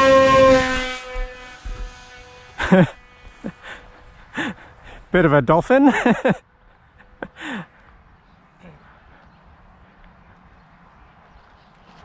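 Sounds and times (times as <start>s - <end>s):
electric motor propeller whine: 0.0s - 4.3s
person laughing: 2.6s - 5.0s, 5.7s - 6.4s.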